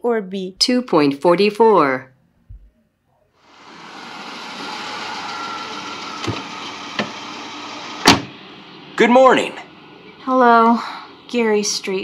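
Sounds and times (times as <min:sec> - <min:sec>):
street traffic rush: 0:03.4 - 0:12.0.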